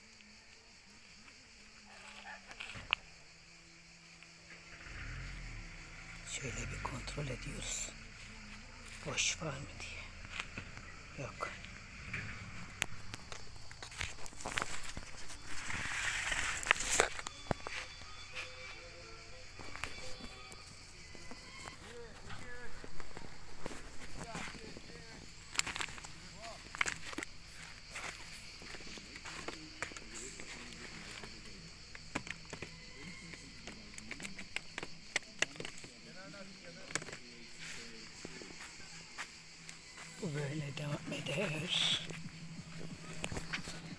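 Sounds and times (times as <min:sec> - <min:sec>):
faint voices: 0:04.4 - 0:43.9
footsteps: 0:08.1 - 0:32.6, 0:37.5 - 0:43.9
rustling: 0:10.0 - 0:18.6.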